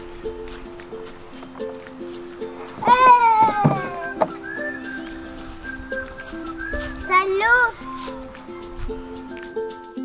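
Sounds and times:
soft plucked background music: 0:00.0 - 0:10.0
child's long falling cry: 0:02.8 - 0:04.1.

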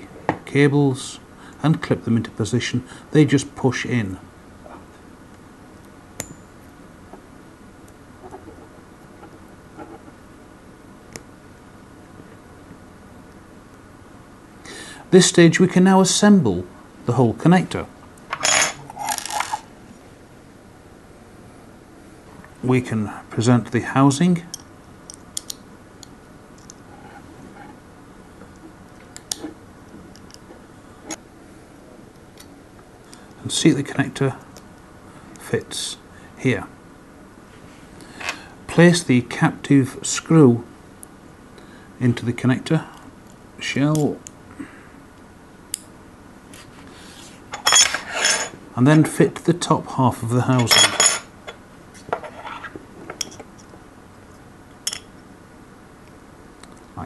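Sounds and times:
small metal parts clinking: 0:18.3 - 0:19.6, 0:47.5 - 0:48.5.

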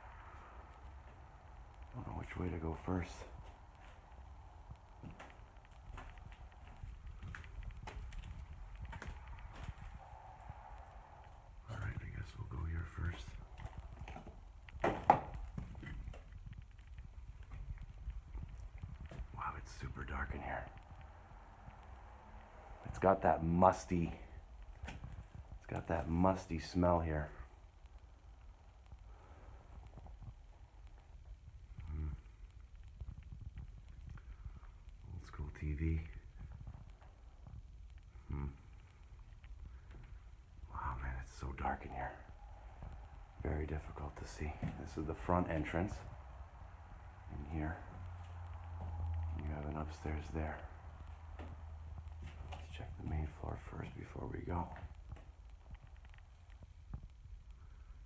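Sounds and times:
slow irregular footsteps: 0:00.0 - 0:58.0.

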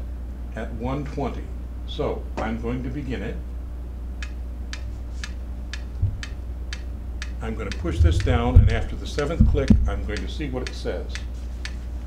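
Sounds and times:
metronome ticking: 0:04.2 - 0:11.8.

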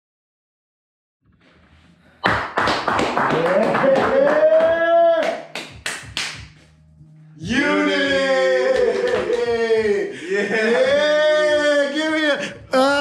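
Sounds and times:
men clapping and slapping hands: 0:02.2 - 0:06.7, 0:08.0 - 0:10.0
man whooping: 0:03.3 - 0:05.5, 0:07.4 - 0:13.0
man shouting: 0:03.4 - 0:05.4, 0:07.4 - 0:13.0.

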